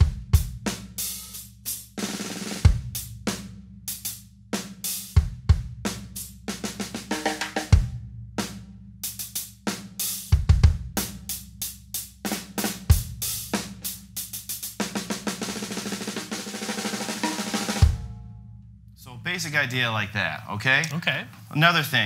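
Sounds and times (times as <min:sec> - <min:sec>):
bass drum: 0:00.0 - 0:01.0, 0:02.6 - 0:04.1, 0:05.0 - 0:09.3, 0:10.2 - 0:11.5, 0:12.3 - 0:18.6
dry muffled snare drum: 0:00.0 - 0:18.2
drum kit groove: 0:00.0 - 0:18.3.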